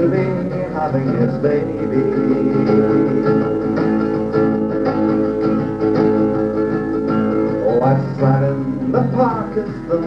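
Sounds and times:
acoustic guitar chords and picking: 0.0s - 10.0s
person singing folk song: 0.0s - 10.0s.

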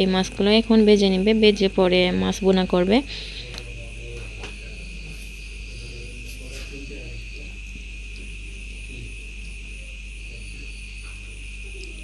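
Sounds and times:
cricket trill: 0.0s - 12.0s.

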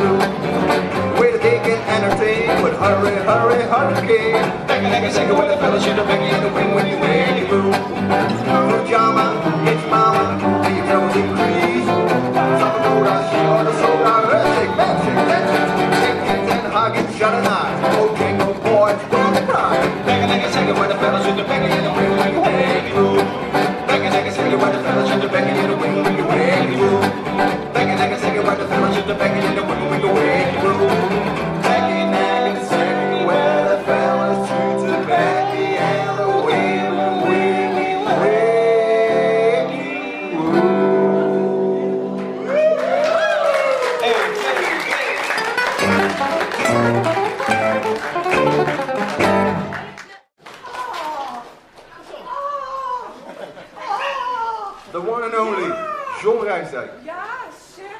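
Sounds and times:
plucked double bass: 0.0s - 38.0s, 45.8s - 49.8s
man singing: 0.0s - 42.4s
acoustic guitars playing jazz: 0.0s - 42.5s, 45.2s - 50.1s.

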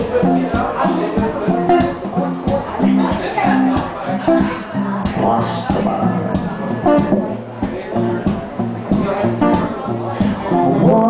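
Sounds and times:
acoustic guitar chords strummed: 0.0s - 11.0s.

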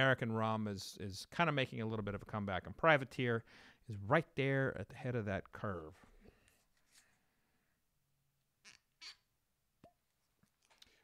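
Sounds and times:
brief squeak: 8.6s - 9.3s.

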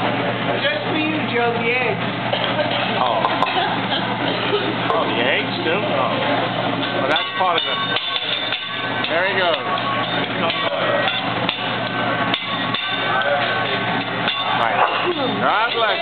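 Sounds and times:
metal utensils clacking on griddle: 6.8s - 16.0s.

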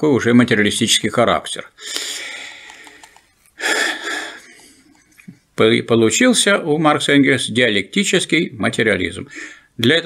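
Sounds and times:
sharp intake of breath: 1.8s - 4.6s
man breathing: 1.8s - 5.0s, 9.3s - 9.8s.

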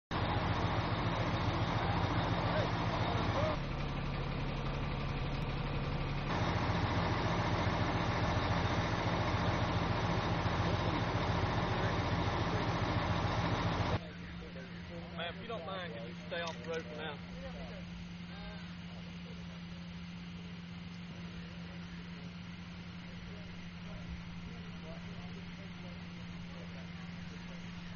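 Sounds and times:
truck engine idling: 0.0s - 27.9s
faint voices: 0.2s - 4.8s, 9.1s - 27.9s.

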